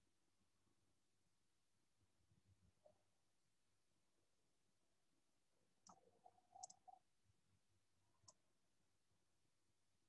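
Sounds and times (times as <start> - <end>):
computer mouse clicks: 5.8 - 7.0, 8.2 - 8.4.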